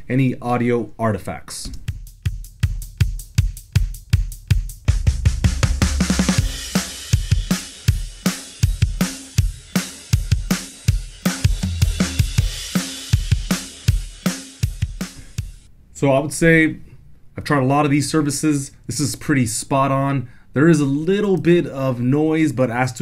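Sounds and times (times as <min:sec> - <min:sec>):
drum kit beat: 0:01.8 - 0:15.7.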